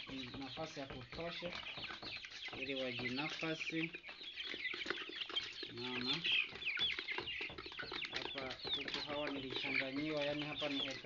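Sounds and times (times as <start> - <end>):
chicks peeping and cheeping: 0.0 - 11.0.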